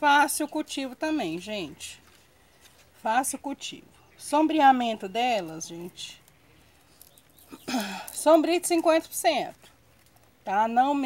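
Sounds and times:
woman speaking: 0.0s - 2.0s, 3.0s - 6.2s, 7.8s - 9.7s, 10.4s - 11.0s.

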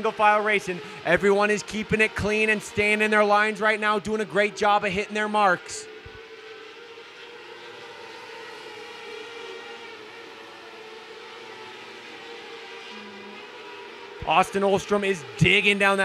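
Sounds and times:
race car engines whining: 0.0s - 16.0s.

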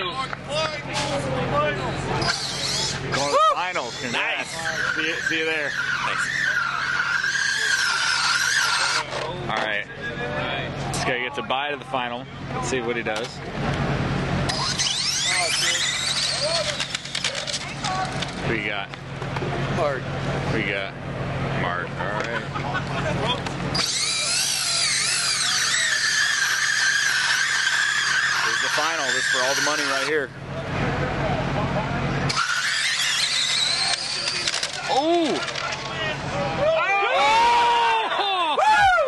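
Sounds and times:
electric motor whine: 2.2s - 9.2s, 14.4s - 17.6s, 23.7s - 30.2s, 32.3s - 35.7s.

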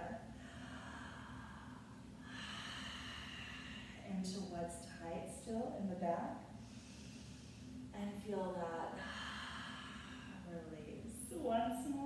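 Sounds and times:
woman breathing in: 0.3s - 4.1s, 6.5s - 7.9s, 9.0s - 10.5s.

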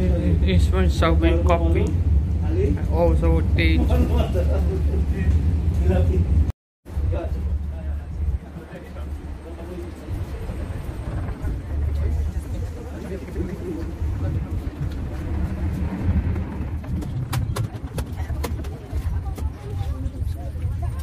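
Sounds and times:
train rumble inside carriage: 0.0s - 21.0s.

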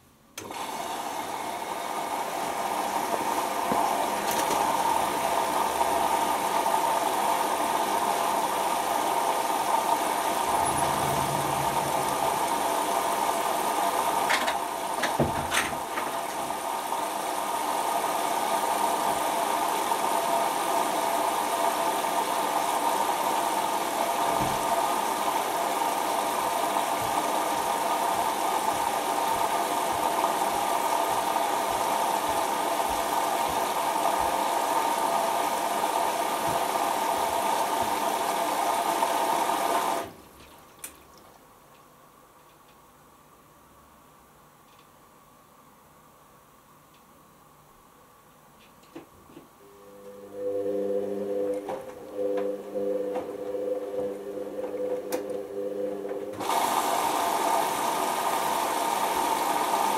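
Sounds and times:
water rushing into washing machine: 0.4s - 41.4s, 49.9s - 59.9s.

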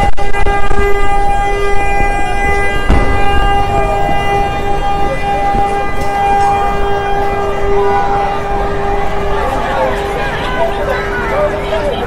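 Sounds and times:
vehicle horn blaring: 0.0s - 10.9s.

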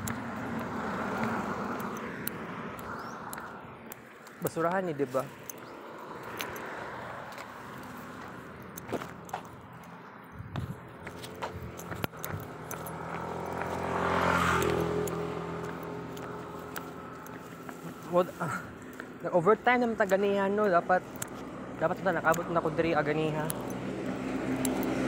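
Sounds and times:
light clicks and rustles: 0.0s - 13.8s
vehicle engine passing by: 0.0s - 18.8s, 21.3s - 25.0s.

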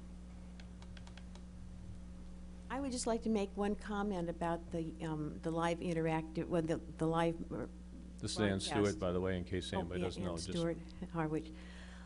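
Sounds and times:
steady low hum: 0.0s - 12.0s
typing on laptop keyboard: 0.6s - 1.4s.

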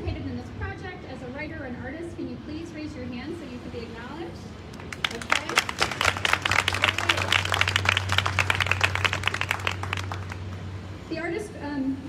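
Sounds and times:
audience applauding: 4.7s - 10.6s.

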